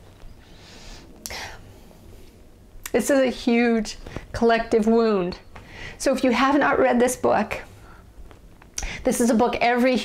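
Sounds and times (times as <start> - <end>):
woman breathing tearfully: 5.6 - 6.0.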